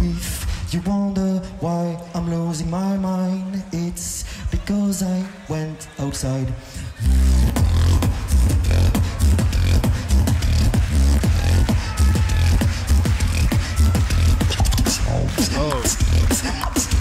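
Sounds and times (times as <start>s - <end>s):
beatboxing through loudspeakers: 0.0s - 17.0s.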